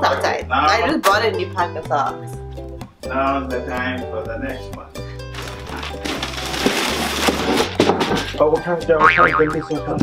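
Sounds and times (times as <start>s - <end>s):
wrapping paper crinkling: 5.4s - 7.6s
background music with bass line: 8.6s - 10.0s.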